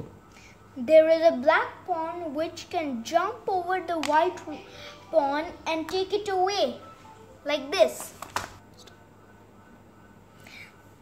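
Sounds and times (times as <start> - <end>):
faint breathy sound: 10.3 - 11.0.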